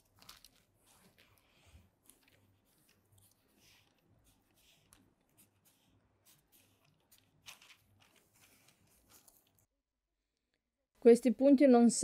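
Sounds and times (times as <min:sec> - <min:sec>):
marker scratching on paper: 0:00.9 - 0:09.4.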